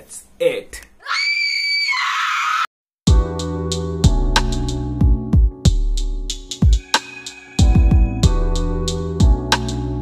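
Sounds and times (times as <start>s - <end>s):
high-pitched scream: 1.0s - 2.7s.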